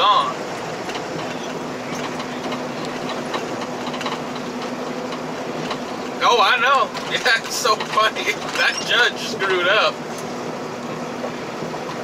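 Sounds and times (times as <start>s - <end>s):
tyres running on pavement: 0.0s - 12.0s.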